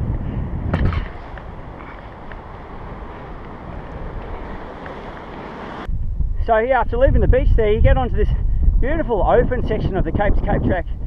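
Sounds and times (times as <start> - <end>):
wind buffeting microphone: 0.0 - 11.0
surf breaking on beach: 0.8 - 5.9.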